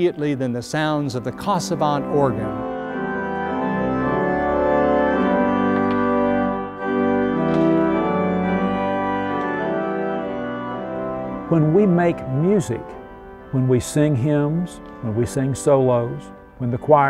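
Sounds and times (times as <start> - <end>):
pipe organ playing full chords: 0.0 - 17.0.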